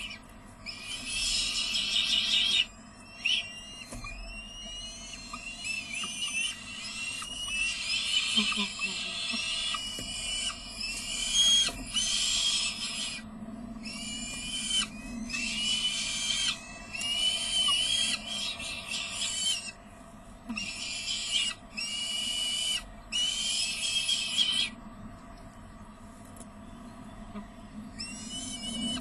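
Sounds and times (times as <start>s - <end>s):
falcon chicks rasping calls: 0.0s - 19.8s, 20.5s - 24.8s, 27.3s - 29.0s.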